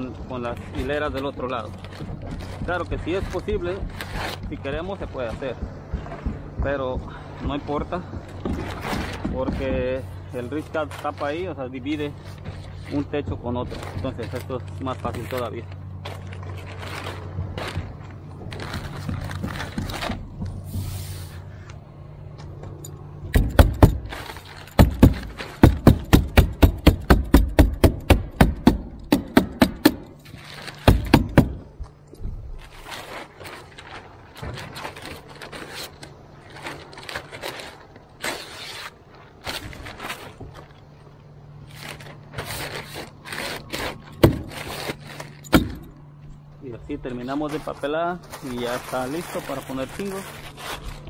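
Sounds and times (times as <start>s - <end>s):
steady low hum: 0.0s - 51.0s
plastic sheeting rustling: 8.6s - 21.6s, 24.0s - 26.8s, 30.2s - 31.8s, 32.4s - 46.0s, 47.2s - 51.0s.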